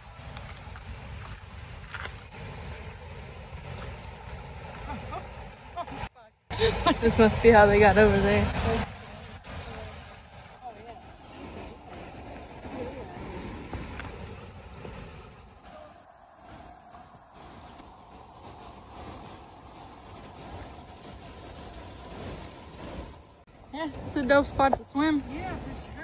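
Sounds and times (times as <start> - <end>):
river water rushing: 0.0 - 26.0
wind noise on microphone: 0.0 - 26.0.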